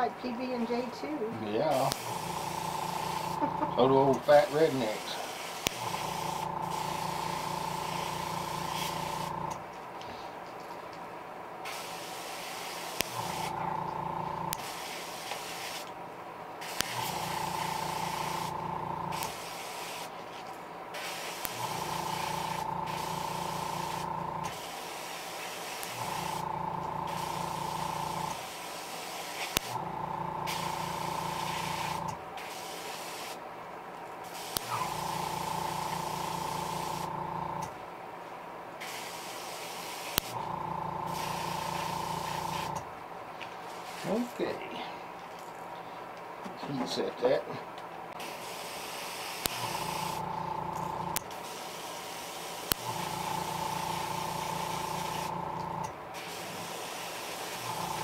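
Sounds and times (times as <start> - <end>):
compressor motor hum with whine: 1.9 - 4.3, 5.7 - 9.6, 13.1 - 14.6, 16.9 - 19.3, 21.4 - 24.6, 25.9 - 28.4, 29.7 - 32.2, 34.6 - 37.8, 40.3 - 42.9, 49.6 - 51.3, 52.7 - 55.9, 57.6 - 58.0
airbrush air hiss: 4.2 - 9.4, 11.6 - 13.6, 14.5 - 15.9, 16.6 - 20.1, 20.9 - 29.8, 30.4 - 33.4, 34.2 - 37.2, 38.8 - 40.4, 41.1 - 42.8, 48.2 - 55.4, 56.2 - 58.0.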